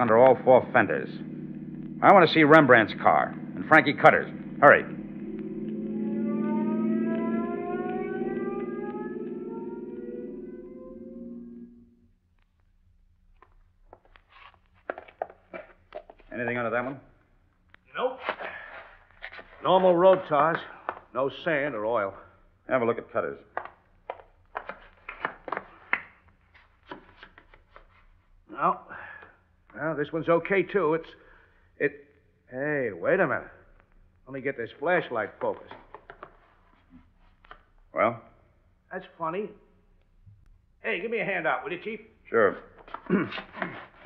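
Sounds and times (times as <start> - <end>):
low recording hum: 0.0 - 28.6
car speeding away: 0.5 - 10.7.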